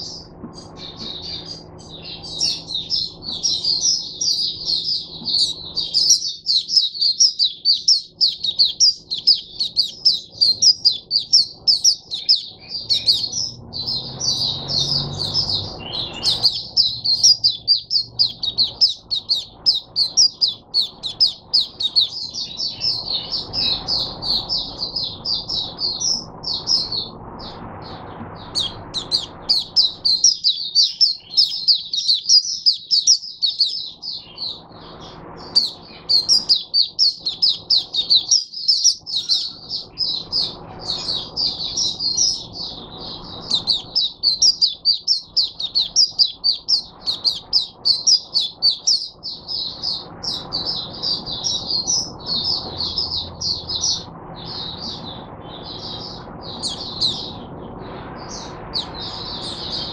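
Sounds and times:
bird twittering song: 0.0 - 59.9.

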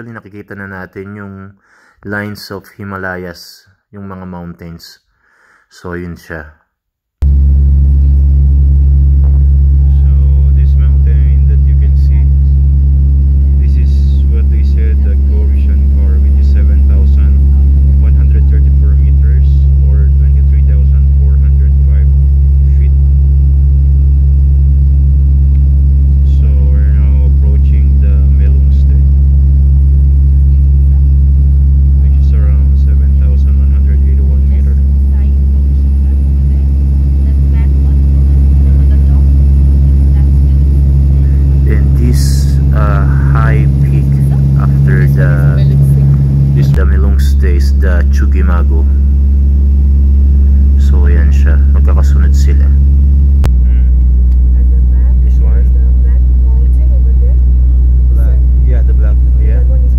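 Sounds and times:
airplane cabin drone: 7.2 - 59.9
faint voices: 9.2 - 12.6, 13.4 - 23.0, 26.3 - 29.1, 31.9 - 49.1, 50.3 - 52.8, 53.6 - 59.9.

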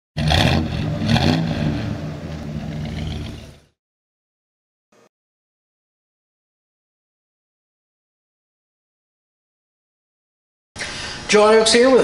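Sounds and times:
car engine revving: 0.2 - 3.8.

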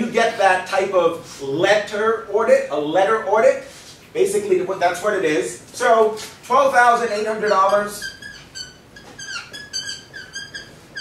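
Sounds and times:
marker squeaking on a whiteboard: 6.1 - 11.0.

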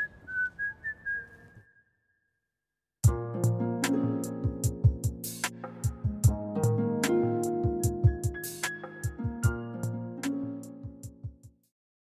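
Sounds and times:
person whistling a tune: 0.0 - 1.9.

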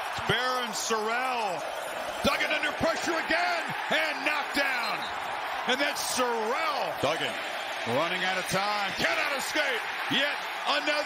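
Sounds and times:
male announcer commentating: 0.0 - 11.0.

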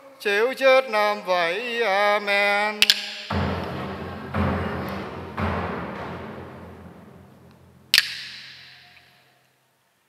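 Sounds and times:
large drum beat: 3.3 - 8.4
wooden clappers clack: 7.4 - 8.6.

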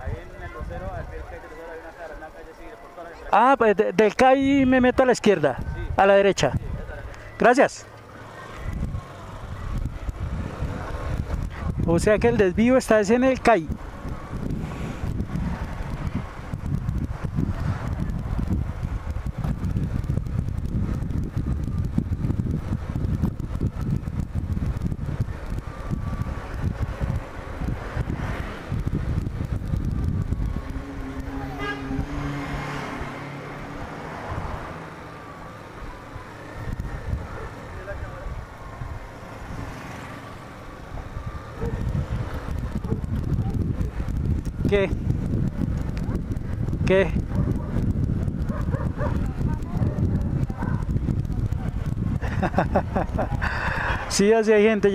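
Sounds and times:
wind on microphone: 4.4 - 7.4, 8.5 - 54.9
motorcycle engine running: 41.2 - 52.3.

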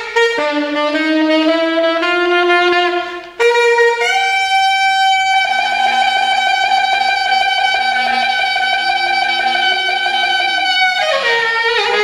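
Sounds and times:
saxophone long high note: 0.0 - 12.0.

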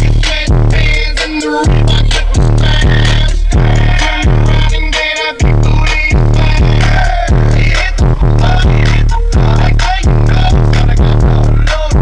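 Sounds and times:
deep sweeping bass notes: 0.0 - 12.0
hip-hop track on car stereo: 0.0 - 12.0.

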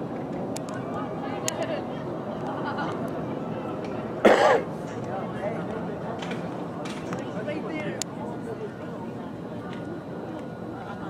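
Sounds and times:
faint scattered voices: 0.0 - 11.0
outdoor background noise: 0.0 - 11.0.

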